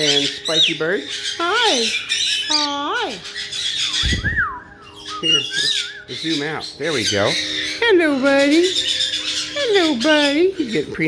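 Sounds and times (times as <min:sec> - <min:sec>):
parrot whistle rising and falling: 0:03.8 - 0:06.1.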